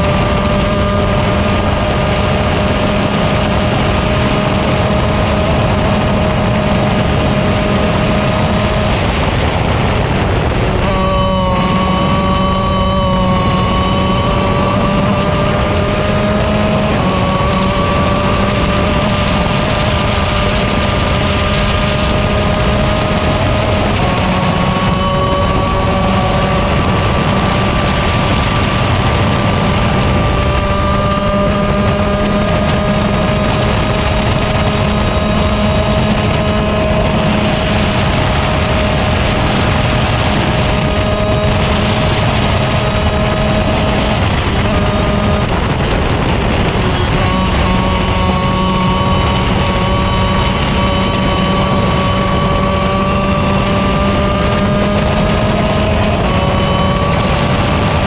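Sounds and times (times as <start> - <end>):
kart engine running flat out: 0.0 - 58.0.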